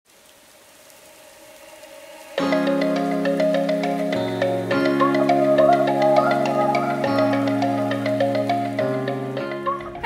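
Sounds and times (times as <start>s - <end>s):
soft rain-like hiss: 0.1s - 10.0s
opening music: 2.4s - 10.0s.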